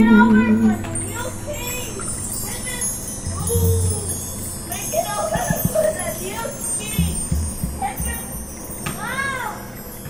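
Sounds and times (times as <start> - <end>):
held musical note: 0.0 - 8.7
children playing: 0.0 - 10.0
faint high ringing tones: 0.0 - 10.0.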